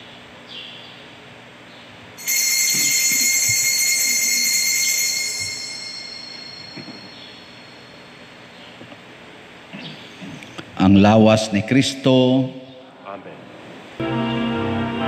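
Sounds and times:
small metal bell ringing: 0:02.2 - 0:08.3.

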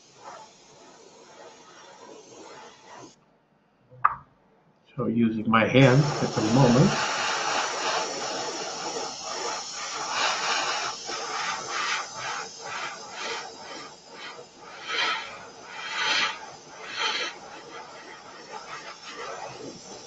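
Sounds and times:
airbrush air hiss: 0:00.0 - 0:03.2, 0:05.6 - 0:20.0.

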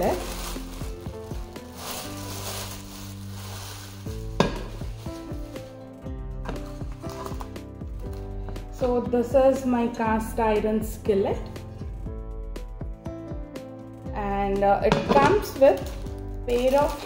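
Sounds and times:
plastic bag crinkling: 0:00.0 - 0:06.0, 0:15.7 - 0:17.0.

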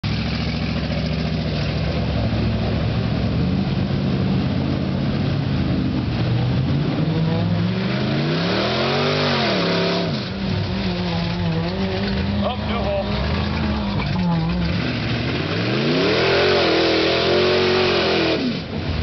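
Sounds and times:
truck engine revving in mud: 0:00.0 - 0:19.0.

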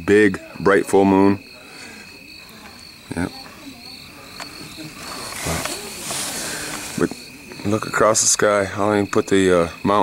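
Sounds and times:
crickets chirping: 0:00.0 - 0:10.0
burst of noise: 0:04.4 - 0:07.4.

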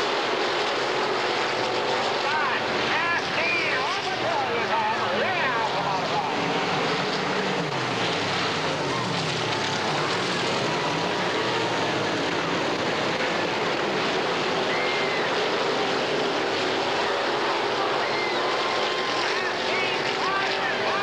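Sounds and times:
race car engines running hard: 0:00.0 - 0:21.0
spectators' voices: 0:00.0 - 0:21.0.

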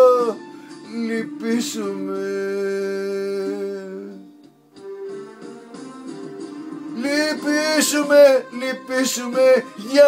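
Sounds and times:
man singing: 0:00.0 - 0:04.2, 0:06.9 - 0:10.0.

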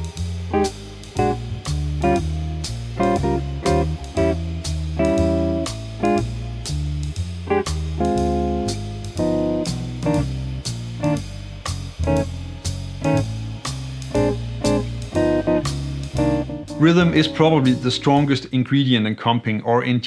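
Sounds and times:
drums keeping steady time: 0:00.0 - 0:18.5
guitar chord stabs: 0:00.0 - 0:18.6
bass notes: 0:00.0 - 0:18.7.

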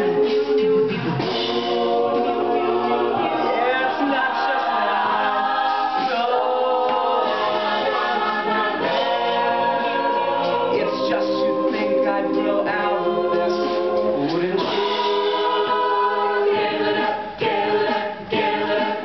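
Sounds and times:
a cappella group singing in harmony: 0:00.0 - 0:19.0.

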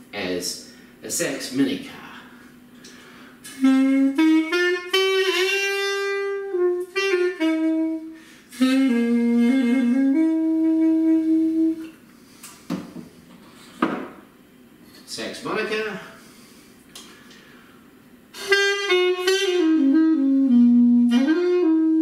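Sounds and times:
reed pipe melody: 0:03.5 - 0:11.9, 0:18.4 - 0:22.0.

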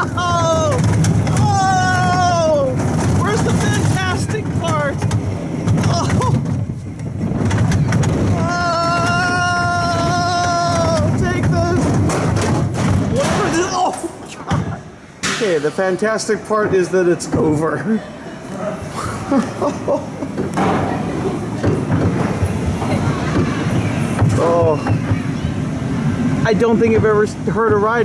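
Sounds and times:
roller coaster rumble and rattle: 0:00.0 - 0:14.9, 0:18.4 - 0:28.0.

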